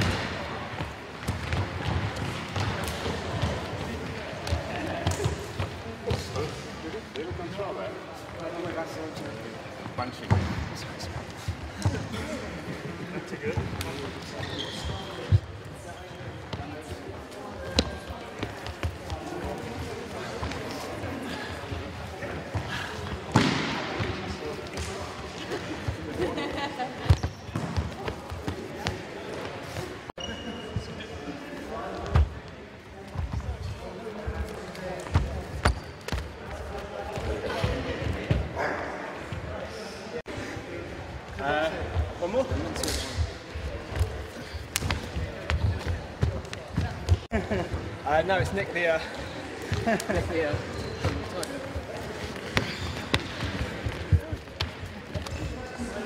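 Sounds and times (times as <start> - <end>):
people talking: 0.0 - 56.0.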